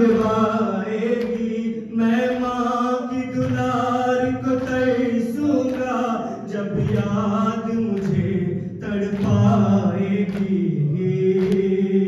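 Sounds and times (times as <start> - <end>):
men chanting a mourning lament: 0.0 - 12.0.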